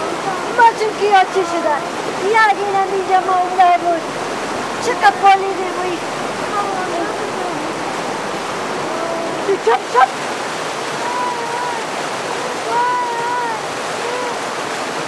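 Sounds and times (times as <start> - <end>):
loud rushing noise: 1.9 - 9.2.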